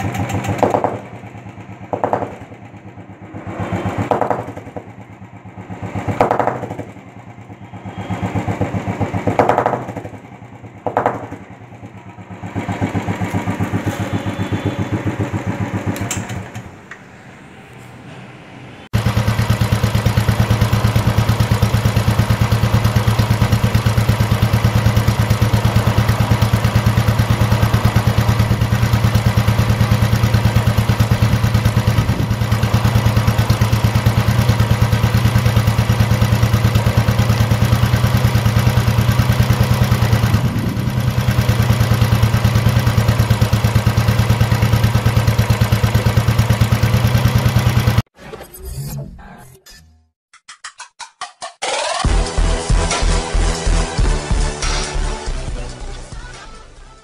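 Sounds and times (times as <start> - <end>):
motorcycle engine idling: 0.0 - 16.6, 19.0 - 48.1.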